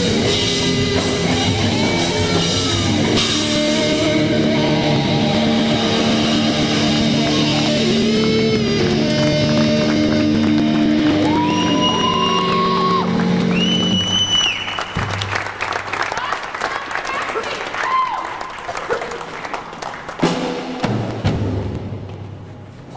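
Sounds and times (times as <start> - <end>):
rock band holding a chord: 0.0 - 13.8
audience applauding and cheering: 0.0 - 20.8.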